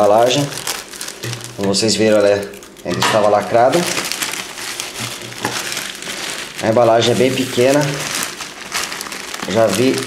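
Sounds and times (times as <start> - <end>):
plastic mailer bag crinkling: 0.0 - 10.0.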